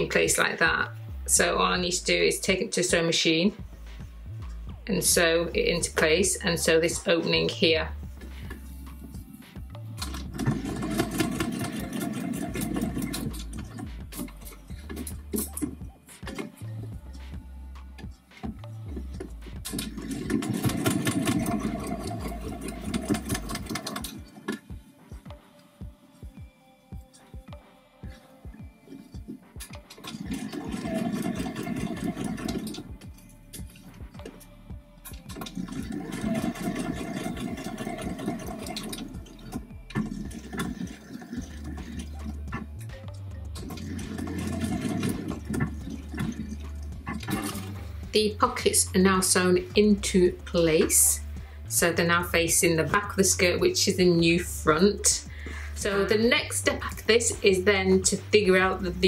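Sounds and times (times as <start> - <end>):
background music: 0.0 - 59.0
electric sewing machine stitching: 10.0 - 14.4, 19.7 - 24.5, 29.8 - 33.0, 35.4 - 42.2, 43.6 - 47.8.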